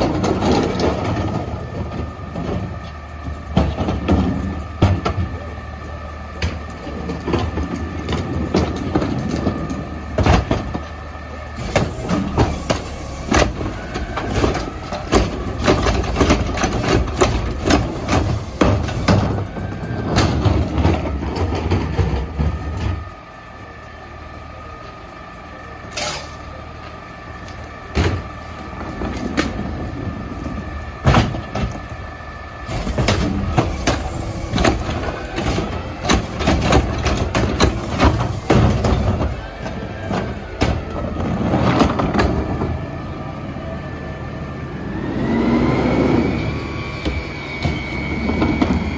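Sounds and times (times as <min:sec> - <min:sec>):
refuse knocking and clunking: 0:00.0 - 0:05.5, 0:06.4 - 0:11.0, 0:11.6 - 0:23.2, 0:27.4 - 0:31.9, 0:32.7 - 0:42.8
garbage truck engine rumble: 0:00.0 - 0:48.9
hydraulic whine: 0:00.0 - 0:48.9.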